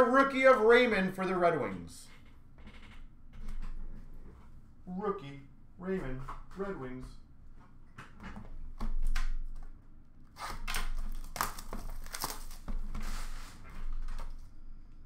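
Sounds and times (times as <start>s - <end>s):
cardboard and wrappers rustling: 10.8s - 14.4s.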